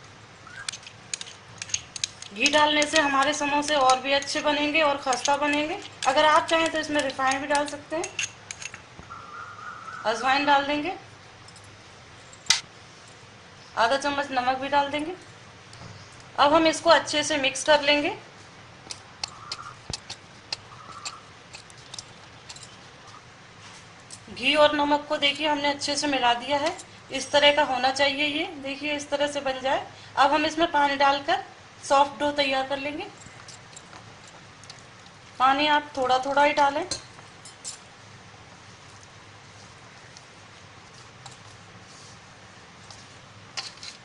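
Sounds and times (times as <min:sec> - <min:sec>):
bangles clicking and clinking: 0:00.6 - 0:08.9, 0:18.9 - 0:22.9, 0:33.0 - 0:35.1, 0:35.8 - 0:37.9.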